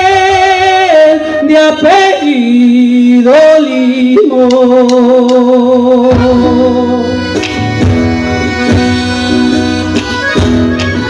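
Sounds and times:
man singing long note: 0.0 - 7.4
band playing: 6.0 - 11.0.

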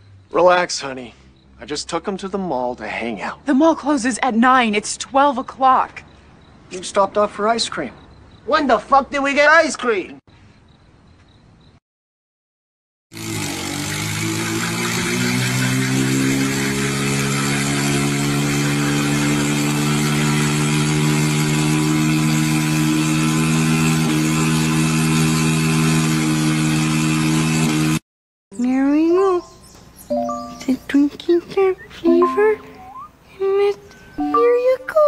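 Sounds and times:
boat engine droning: 13.2 - 28.0.

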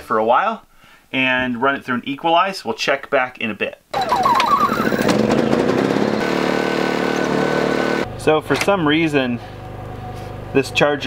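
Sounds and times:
generator running: 4.0 - 10.6.

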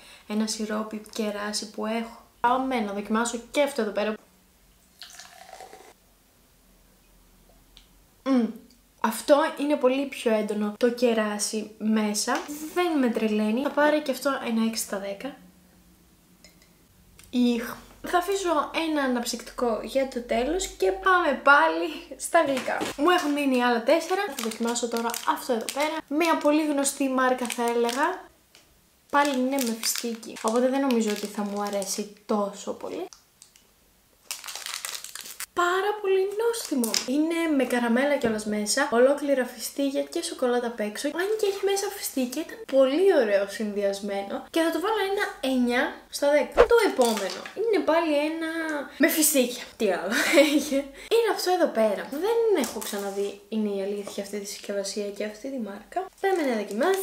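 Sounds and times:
soda pouring and fizzing: 4.9 - 6.0
plastic wrapper crinkling: 22.5 - 35.5, 36.5 - 37.2, 46.6 - 47.6, 52.6 - 53.3, 56.1 - 57.0.

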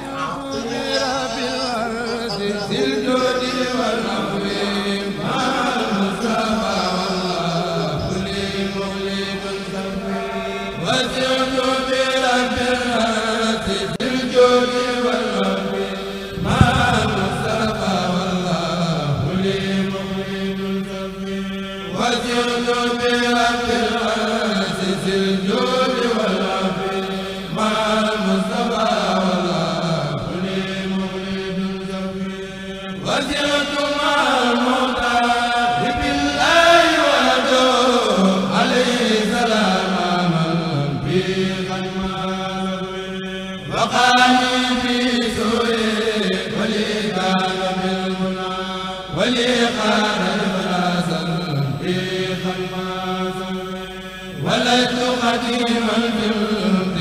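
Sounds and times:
voices chanting devotional poem: 0.0 - 57.0
held low drone note: 16.3 - 19.8.

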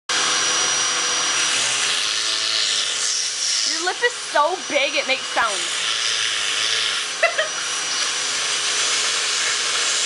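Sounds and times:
vacuum cleaner running: 0.1 - 10.0.

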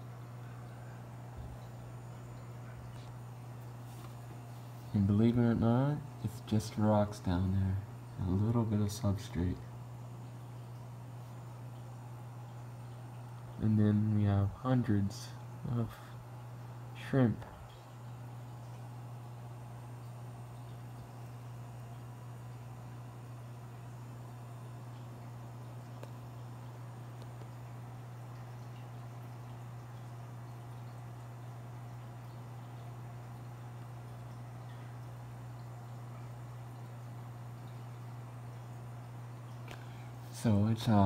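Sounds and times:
aquarium filter humming: 0.0 - 41.0.

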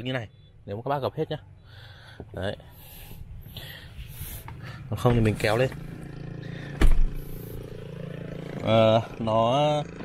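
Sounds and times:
person breathing: 1.6 - 5.0, 6.4 - 7.9.

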